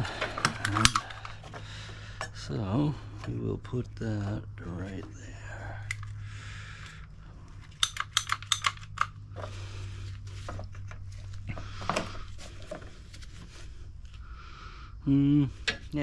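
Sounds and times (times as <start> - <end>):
hose handling sounds: 0.0 - 2.4, 6.8 - 14.2
steady low hum: 0.0 - 16.0
hose cutter clicks: 0.4 - 1.1, 7.8 - 9.2.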